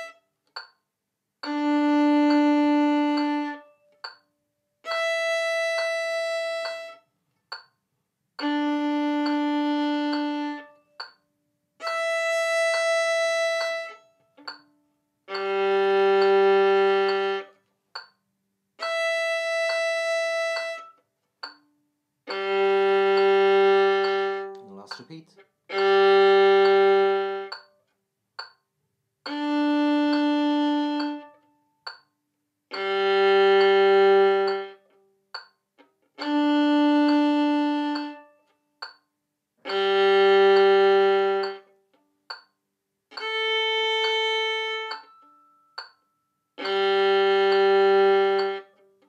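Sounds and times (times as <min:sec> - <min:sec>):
violin bowed note: 0:00.0 - 0:00.3, 0:01.4 - 0:04.2, 0:04.8 - 0:07.1, 0:08.4 - 0:11.1, 0:11.8 - 0:14.6, 0:15.2 - 0:17.6, 0:18.8 - 0:21.0, 0:22.2 - 0:27.7, 0:29.3 - 0:31.5, 0:32.7 - 0:35.0, 0:36.2 - 0:38.4, 0:39.6 - 0:41.8, 0:43.1 - 0:45.9, 0:46.6 - 0:49.0
metronome clicks: 0:00.0 - 0:49.0
violin bowing long note: 0:15.3 - 0:17.6, 0:22.3 - 0:24.9, 0:25.7 - 0:27.6, 0:32.7 - 0:34.8, 0:39.6 - 0:41.7, 0:46.6 - 0:48.9.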